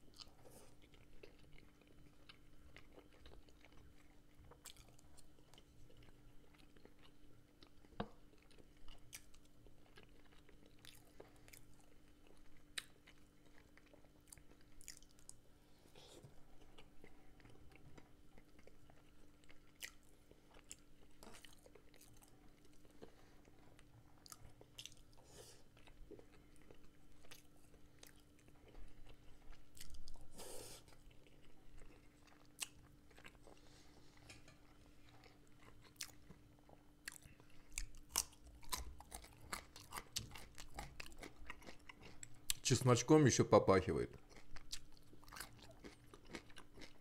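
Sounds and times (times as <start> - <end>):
close-miked chewing: 0.0 - 47.0.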